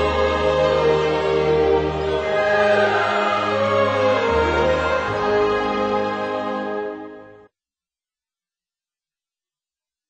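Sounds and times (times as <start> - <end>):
theme music with choir singing: 0.0 - 7.5.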